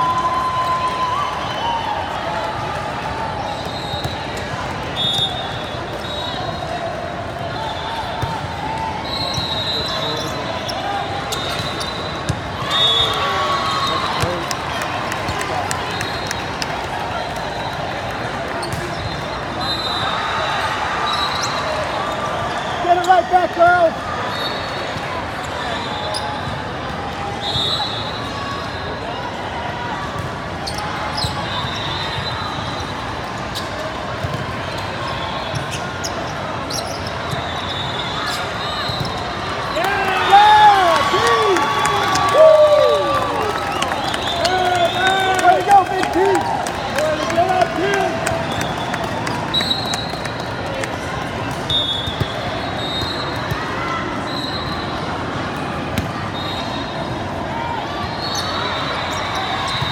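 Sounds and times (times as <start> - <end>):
hubbub of a large hall: 0.0 - 59.9
players shouting: 38.3 - 50.9.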